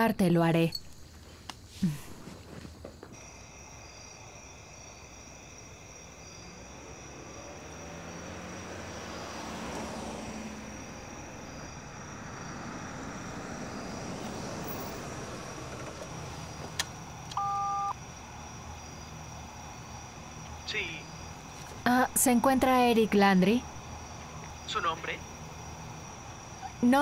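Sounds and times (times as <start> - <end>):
car engine and tyre noise: 0.9 - 26.8.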